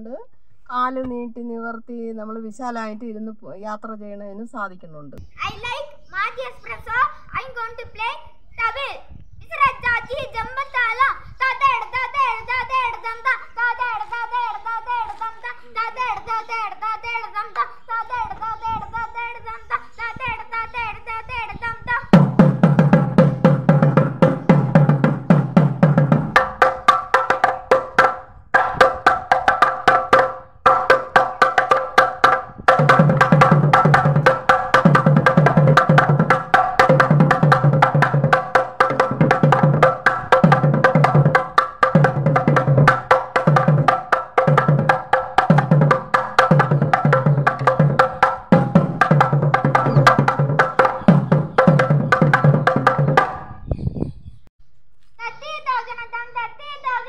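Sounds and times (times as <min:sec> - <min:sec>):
deep drum strokes: 0:22.2 - 0:53.4.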